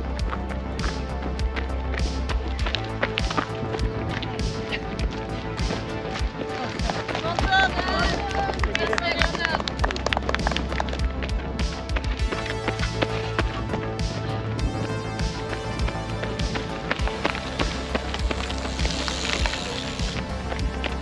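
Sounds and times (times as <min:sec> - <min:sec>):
background music with steady beat: 0:00.0 - 0:21.0.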